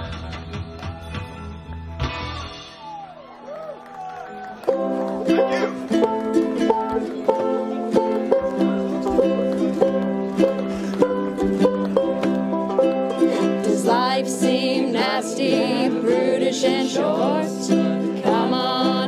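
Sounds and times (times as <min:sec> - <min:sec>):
plucked string music: 0:04.7 - 0:19.0.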